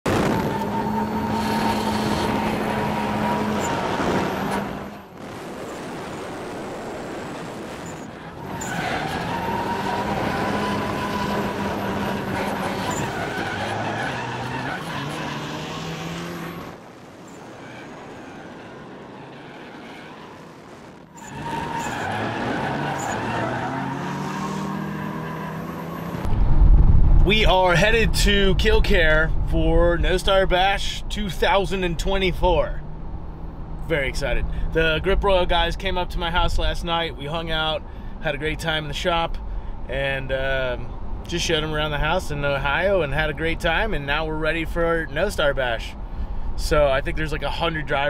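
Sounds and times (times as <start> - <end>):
tire squeal: 0.1 - 5.8, 7.7 - 26.3
car engines revving: 0.1 - 26.4.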